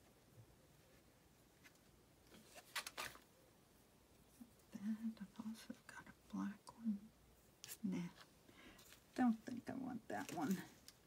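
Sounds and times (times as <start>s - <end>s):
woman whispering: 4.7s - 7.1s.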